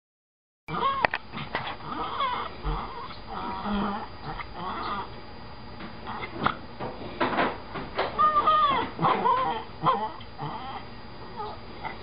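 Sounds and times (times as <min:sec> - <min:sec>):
dog warbling: 0:00.7 - 0:05.2, 0:06.0 - 0:06.6, 0:08.2 - 0:12.0.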